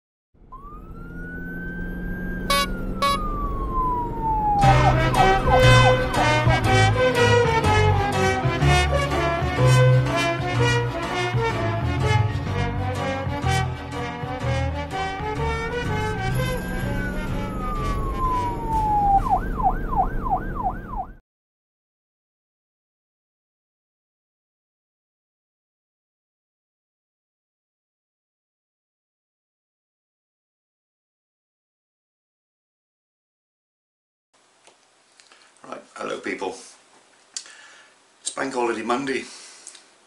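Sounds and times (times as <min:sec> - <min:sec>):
siren-like wail: 0:00.4 - 0:08.0, 0:15.0 - 0:21.2
upbeat rhythmic music: 0:04.6 - 0:18.4.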